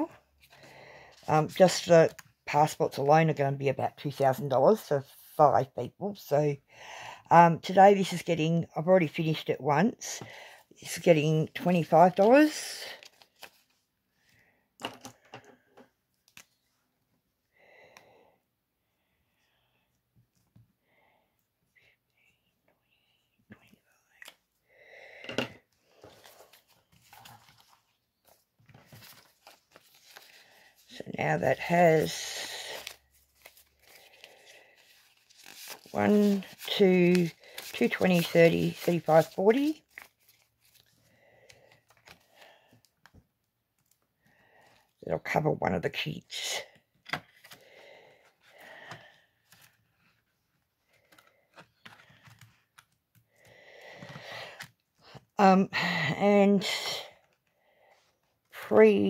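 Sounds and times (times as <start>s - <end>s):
paper rustling: 11.7s - 13.9s, 25.9s - 42.4s, 48.5s - 53.2s.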